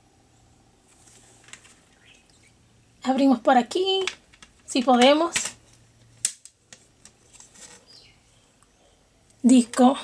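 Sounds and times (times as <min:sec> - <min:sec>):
soft plastic handling: 0:04.0 - 0:08.1.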